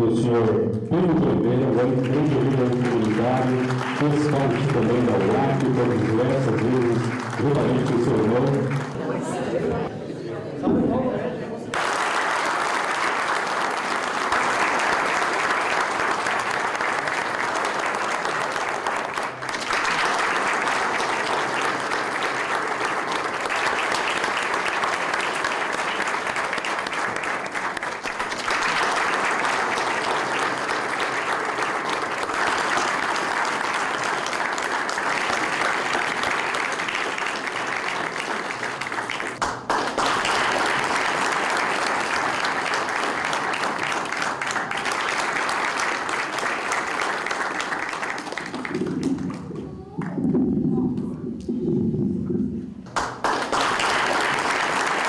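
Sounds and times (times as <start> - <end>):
audience applauding: 1.5 - 9.9, 11.7 - 51.8, 52.8 - 55.0.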